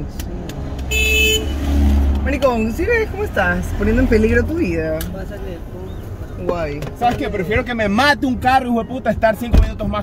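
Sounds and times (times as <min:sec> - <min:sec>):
car passing by: 0:00.4 - 0:04.8
car horn toot: 0:00.9 - 0:01.7.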